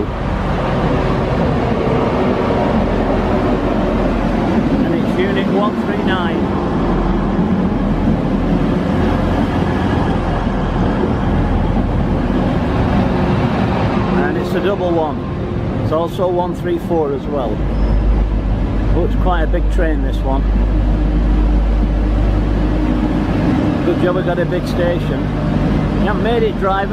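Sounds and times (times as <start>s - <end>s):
diesel train engine drone: 0.0s - 26.9s
train wheels on rails: 0.0s - 26.9s.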